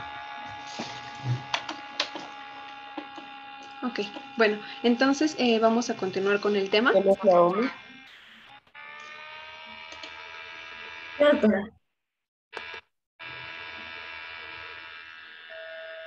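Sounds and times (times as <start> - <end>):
steady buzzing tone: 0.0 - 11.6, 12.6 - 16.0.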